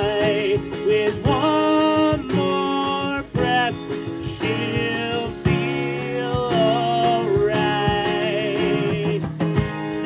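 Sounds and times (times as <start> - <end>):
drum kit: 0.0 - 10.0
man singing: 0.0 - 10.0
strummed acoustic guitar: 0.0 - 10.0.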